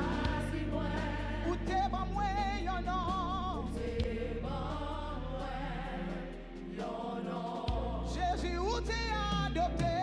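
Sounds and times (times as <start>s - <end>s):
low keyboard and bass notes: 0.0s - 10.0s.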